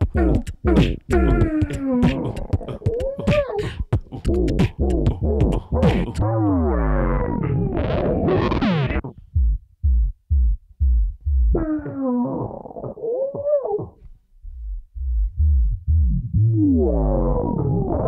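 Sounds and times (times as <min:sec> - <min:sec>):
effected vocal tones gliding: 0:00.0 - 0:09.2
beatboxed clicks and kicks: 0:00.0 - 0:18.0.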